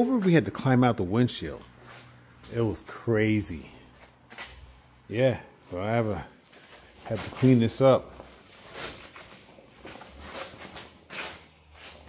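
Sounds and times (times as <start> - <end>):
soft rustling and shuffling: 1.4 - 12.0.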